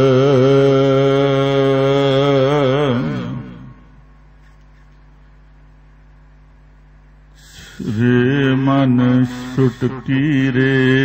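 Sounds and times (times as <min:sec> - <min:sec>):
man chanting: 0:00.0 - 0:03.9, 0:07.4 - 0:11.0
low hum: 0:00.0 - 0:11.0.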